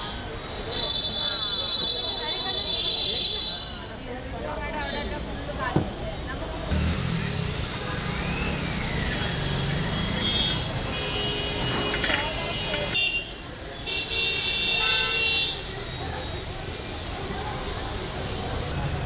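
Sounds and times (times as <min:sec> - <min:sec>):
traffic: 0:00.0 - 0:19.0
vehicle horn honking: 0:10.2 - 0:15.6.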